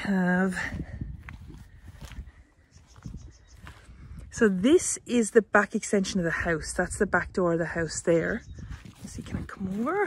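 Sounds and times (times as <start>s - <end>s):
footsteps through grass: 0.3s - 5.6s, 8.7s - 10.0s
faint bird calls: 2.4s - 4.0s.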